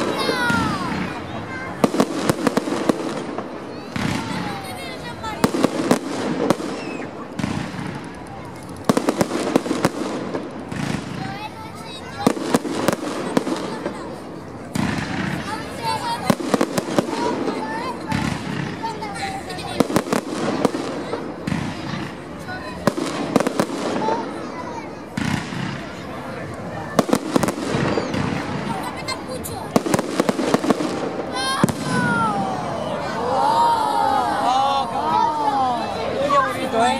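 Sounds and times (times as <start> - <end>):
firework bangs: 0.0 - 33.2.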